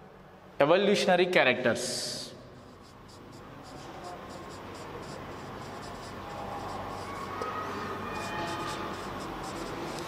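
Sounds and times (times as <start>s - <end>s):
marker scratching on whiteboard: 2.5s - 10.0s.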